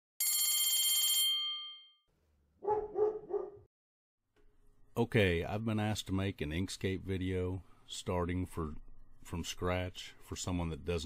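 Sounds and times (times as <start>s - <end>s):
electric bell ringing: 0.2s - 2.0s
dog barking: 2.6s - 3.7s.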